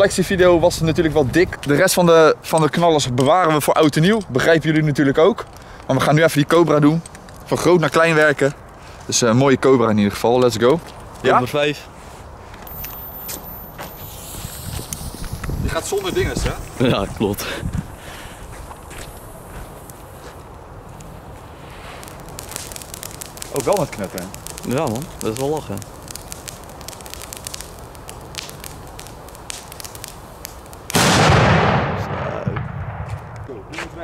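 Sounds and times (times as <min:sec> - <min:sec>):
faint outdoor background noise: 0:00.0 - 0:34.0
firecracker fuse hissing and crackling: 0:00.0 - 0:34.0.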